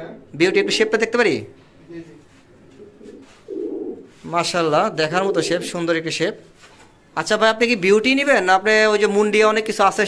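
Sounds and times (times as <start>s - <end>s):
pigeons cooing: 0.0s - 1.2s, 2.7s - 4.2s, 5.0s - 6.1s.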